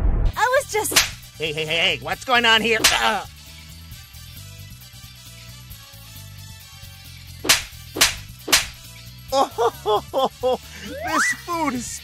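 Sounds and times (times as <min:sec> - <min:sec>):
low background music: 0:00.7 - 0:12.0
cartoon slap sound effects: 0:00.9 - 0:01.2, 0:02.8 - 0:03.2, 0:07.4 - 0:08.8.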